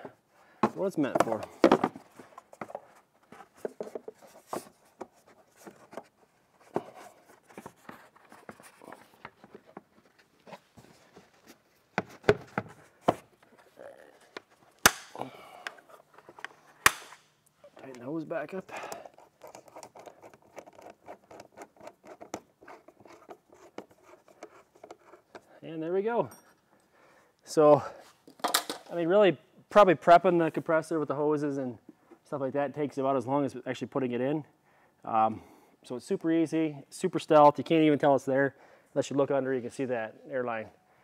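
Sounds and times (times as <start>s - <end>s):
plastic parts clicking and rattling: 18.9s - 25.5s.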